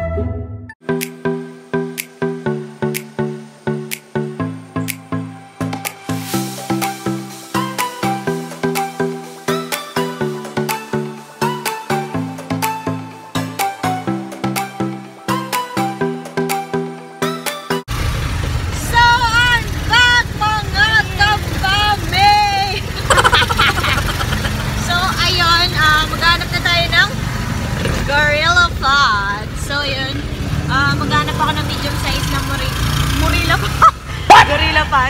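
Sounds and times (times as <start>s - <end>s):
vehicle engine rumble: 17.9s - 35.0s
women's voices: 18.8s - 27.2s, 28.0s - 35.0s.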